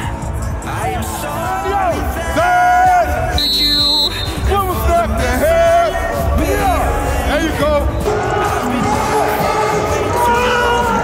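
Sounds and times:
background music: 0:00.0 - 0:11.0
sports whistle blast: 0:03.3 - 0:04.7.

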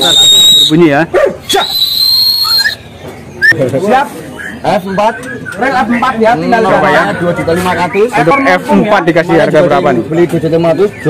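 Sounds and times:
bird whistling and chirping: 0:00.0 - 0:00.9, 0:01.5 - 0:03.6, 0:04.3 - 0:06.0.

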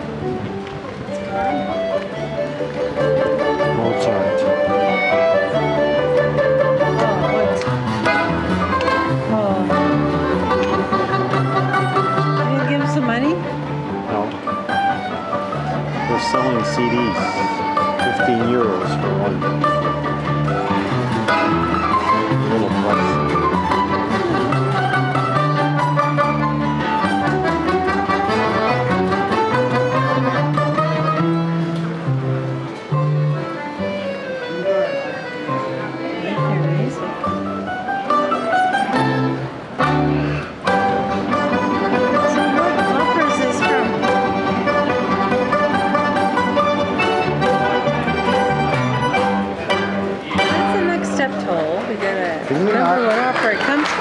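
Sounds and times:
accordion chords: 0:00.0 - 0:53.4
balalaika ensemble playing: 0:00.8 - 0:54.0.

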